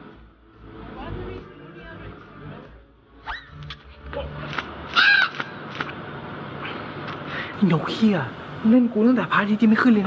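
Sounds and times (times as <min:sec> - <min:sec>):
crow cawing: 0:04.9 - 0:05.6.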